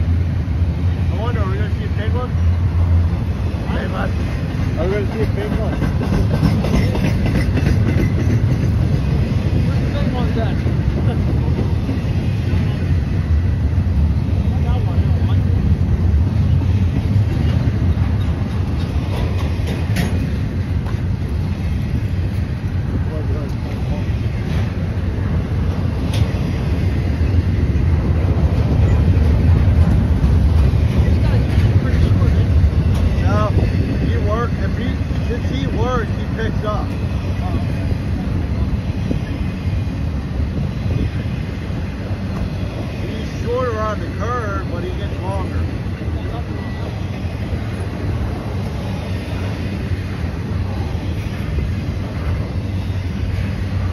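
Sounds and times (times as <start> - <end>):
train wheels rumbling on rail: 0.0 - 53.9.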